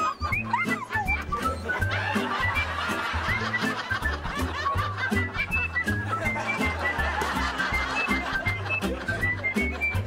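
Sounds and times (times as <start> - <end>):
canned laughter: 0.0 - 10.0
light comedic music: 0.0 - 10.0.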